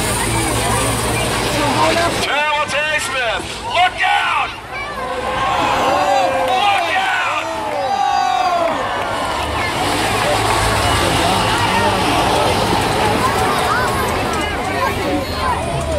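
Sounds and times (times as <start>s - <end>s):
bus engines running: 0.0s - 15.9s
spectators shouting and cheering: 0.0s - 15.9s.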